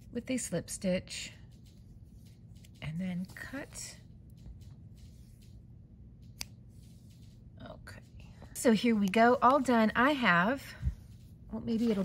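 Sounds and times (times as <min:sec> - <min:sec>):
scissors snipping yarn: 0:06.2 - 0:06.8.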